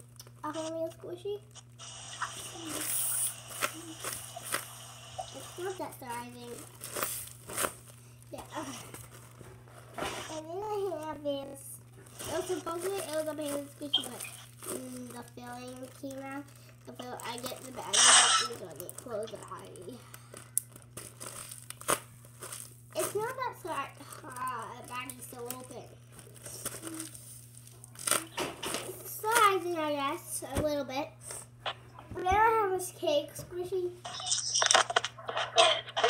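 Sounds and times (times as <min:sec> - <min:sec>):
plastic bag crinkling: 0:01.8 - 0:11.1, 0:12.0 - 0:29.0.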